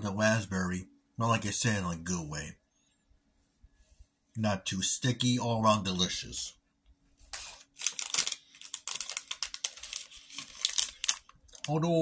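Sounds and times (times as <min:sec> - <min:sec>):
plastic wrapper crinkling: 0:07.2 - 0:12.0.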